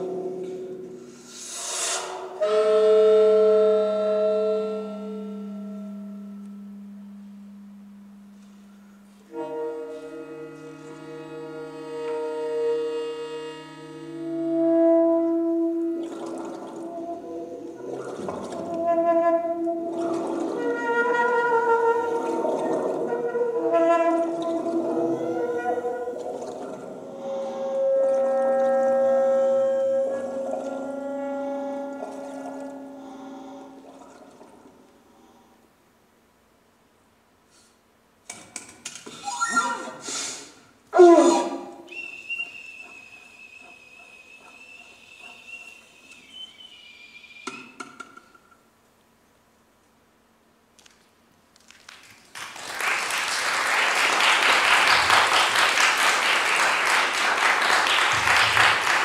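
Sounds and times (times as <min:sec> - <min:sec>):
experimental saxophone and electronics: 0:00.0 - 0:35.4, 0:39.1 - 0:47.9.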